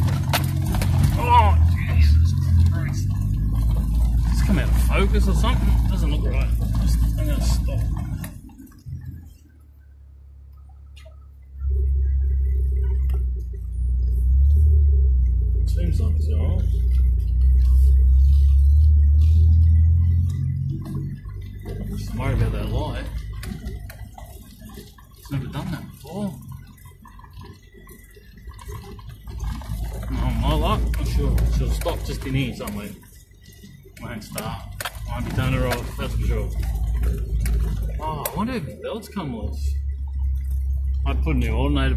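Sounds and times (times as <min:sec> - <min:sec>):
car knocks and rattles: 0:00.0 - 0:09.2, 0:16.7 - 0:38.6
loud low engine drone: 0:11.4 - 0:24.8.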